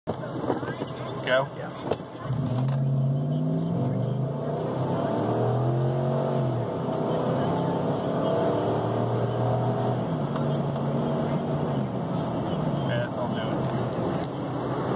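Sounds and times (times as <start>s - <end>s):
car engine accelerating hard: 0.2s - 14.9s.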